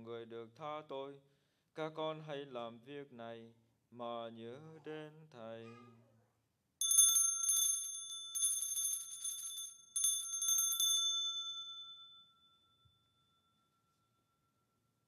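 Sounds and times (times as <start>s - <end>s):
altar bells ringing: 6.8s - 14.7s.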